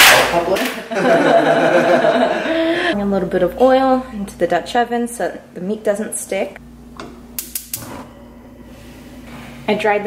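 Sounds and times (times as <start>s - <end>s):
gas burner igniter clicking: 7.0s - 8.0s
gas flame rushing: 7.4s - 9.7s.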